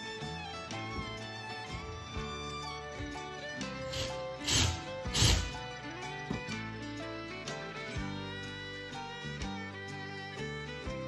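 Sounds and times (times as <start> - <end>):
country bluegrass music: 0.0 - 11.0
cordless drill driving screws: 3.8 - 5.6.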